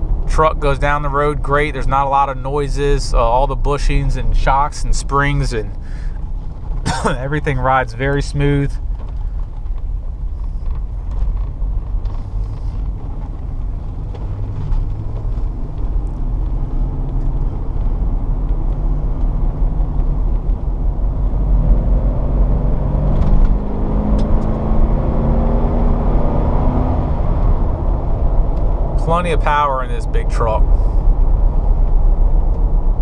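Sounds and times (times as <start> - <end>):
road noise: 0.0 - 33.0
truck engine accelerating: 0.0 - 33.0.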